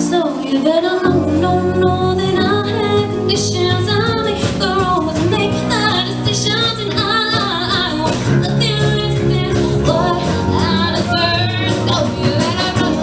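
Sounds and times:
acoustic guitar: 0.0s - 13.0s
band accompaniment: 0.0s - 13.0s
woman singing pop song: 0.0s - 13.0s.

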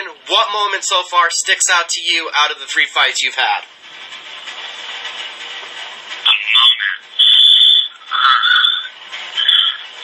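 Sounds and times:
man talking over garbled connection: 0.0s - 3.7s, 6.2s - 10.0s.

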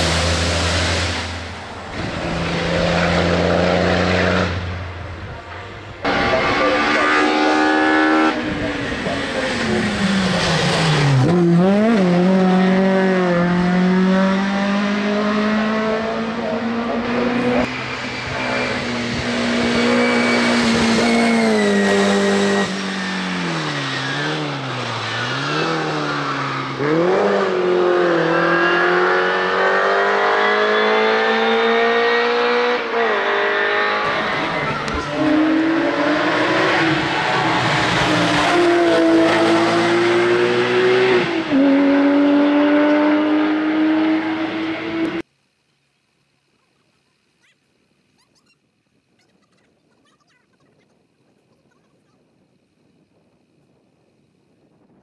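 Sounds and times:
race car engines revving: 0.0s - 45.3s.

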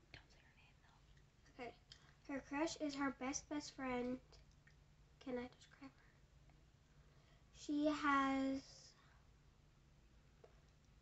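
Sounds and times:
faint whispering: 0.0s - 2.5s.

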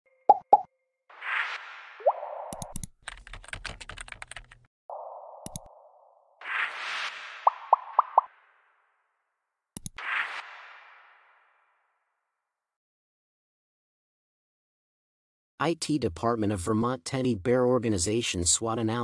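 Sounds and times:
keyboard typing clicks: 2.5s - 4.6s, 5.4s - 5.7s, 9.8s - 10.0s
interface pops: 4.9s - 8.3s.

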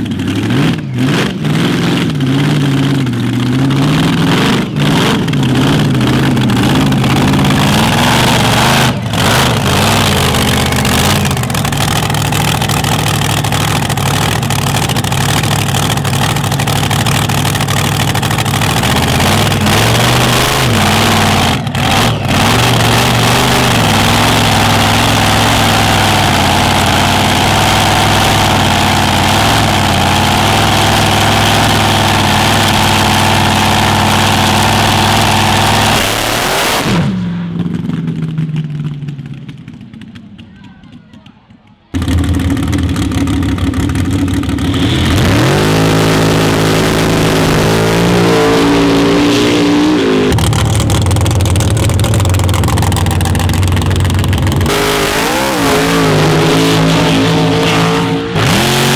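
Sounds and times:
supercharged engine running: 0.0s - 40.3s, 42.0s - 58.9s.

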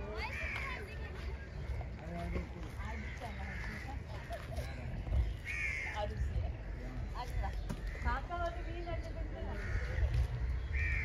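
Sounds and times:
crow cawing: 0.2s - 0.9s, 2.8s - 4.0s, 5.4s - 6.9s, 7.5s - 11.0s.

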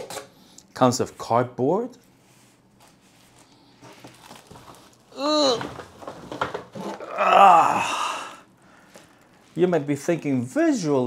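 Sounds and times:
man groaning breathily: 5.1s - 5.8s, 7.0s - 8.5s
man humming with effort: 5.2s - 5.8s, 7.0s - 8.4s.

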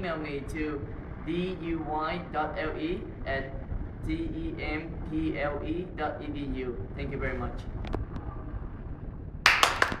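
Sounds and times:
low room hum: 0.0s - 10.0s.

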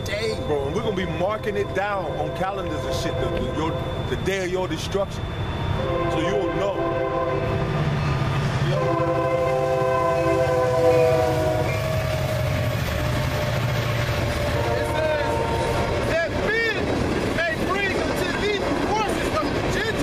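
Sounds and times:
low rumble of train: 0.0s - 20.0s
train horn chord: 1.4s - 4.1s, 5.8s - 7.7s, 8.6s - 16.1s.

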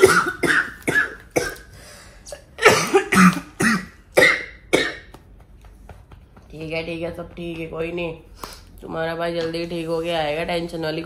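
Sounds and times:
woman coughing: 0.0s - 1.7s, 2.3s - 5.1s.

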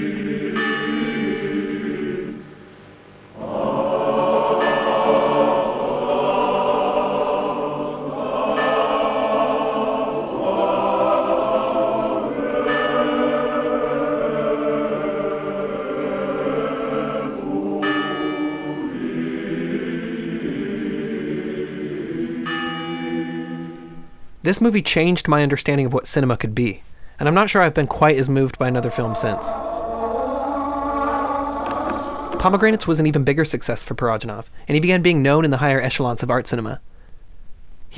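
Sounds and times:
choir chanting: 0.0s - 2.6s, 3.3s - 24.0s, 28.2s - 33.2s
low choral drone: 0.0s - 24.3s, 28.0s - 33.6s
bell ringing: 0.6s - 1.5s, 12.7s - 14.0s.

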